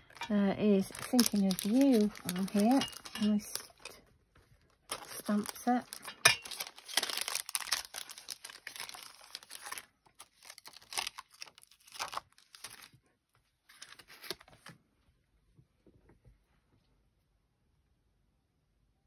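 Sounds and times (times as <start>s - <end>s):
plastic sheets crinkling: 0.0s - 14.8s.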